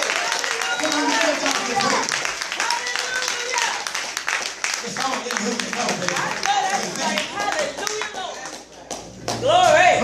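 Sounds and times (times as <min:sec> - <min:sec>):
congregation clapping: 0:00.0 - 0:10.0.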